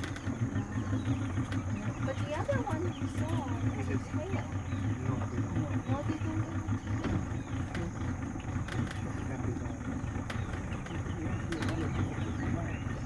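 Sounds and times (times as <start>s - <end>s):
boat engine humming: 0.0s - 13.0s.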